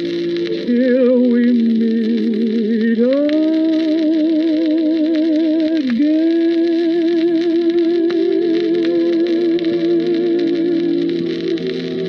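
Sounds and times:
ballad on an old record: 0.0 - 12.0
record surface hiss and clicks: 0.0 - 12.0.

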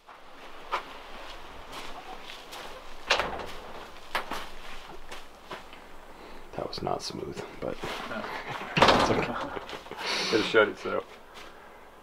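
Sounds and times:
steady low hiss: 0.0 - 12.0.

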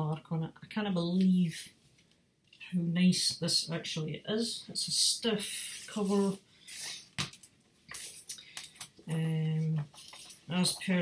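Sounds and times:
paper rustling: 9.8 - 10.5.

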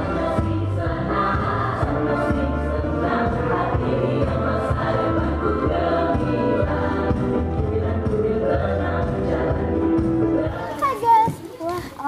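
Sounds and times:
girl talking: 10.6 - 12.0.

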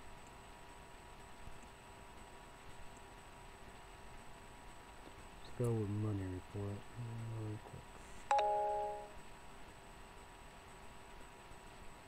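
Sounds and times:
two-note electronic chime: 8.3 - 9.2.

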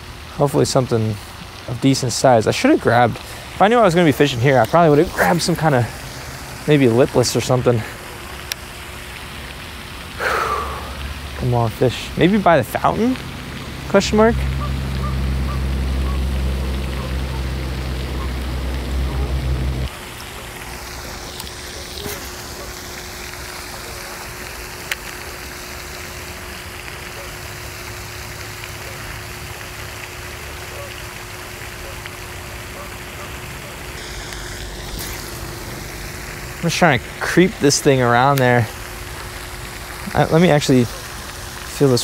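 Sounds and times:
fountain spray and splash: 0.0 - 42.0
low rumble: 14.3 - 19.9.

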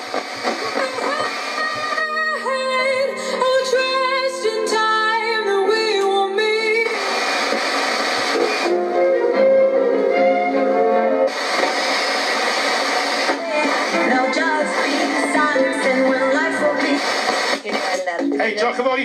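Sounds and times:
song on radio speaker: 0.0 - 19.0.

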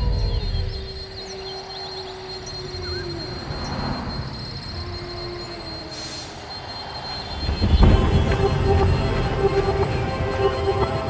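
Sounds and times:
high-pitched whine: 0.0 - 11.0.

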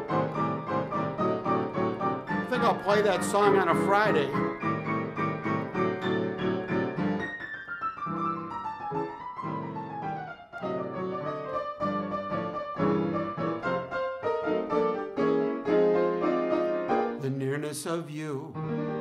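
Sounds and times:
solo piano playing: 0.0 - 19.0.

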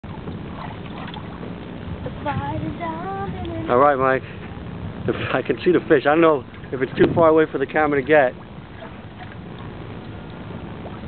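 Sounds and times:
low rumble: 0.0 - 11.0
wind rushing on microphone: 0.1 - 11.0.

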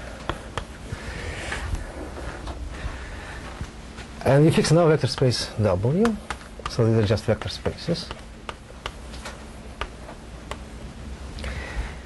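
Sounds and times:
taps and clicks on a board: 5.1 - 5.4, 6.0 - 10.6.

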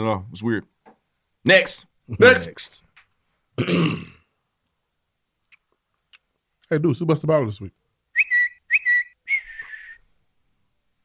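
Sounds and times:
high whistling notes: 8.2 - 10.1.

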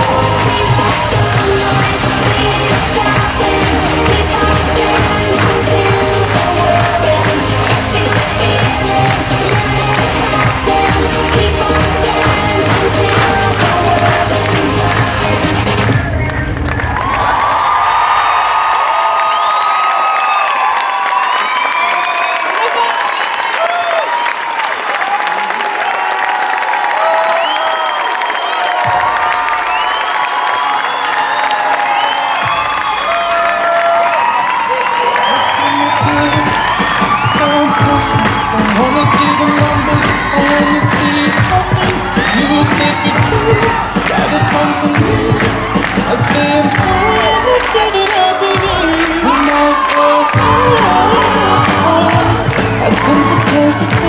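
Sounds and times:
music with bass beat: 0.0 - 16.3, 36.0 - 47.7, 50.4 - 54.0
audience cheering and screaming: 0.0 - 54.0.

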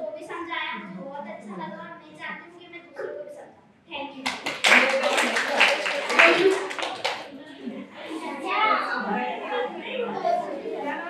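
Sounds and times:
girl speaking: 0.0 - 4.2
group applauding: 4.2 - 7.3.

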